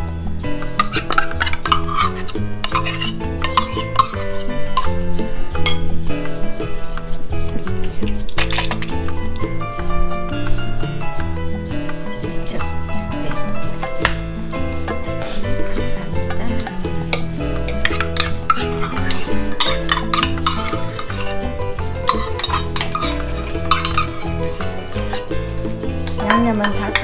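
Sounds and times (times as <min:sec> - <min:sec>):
metal spoons stirring wet mixture: 0:00.7 - 0:05.9, 0:07.6 - 0:09.5, 0:14.9 - 0:27.0
spoons clinking against bowl: 0:00.8 - 0:05.0, 0:05.6 - 0:05.9, 0:16.3 - 0:27.0.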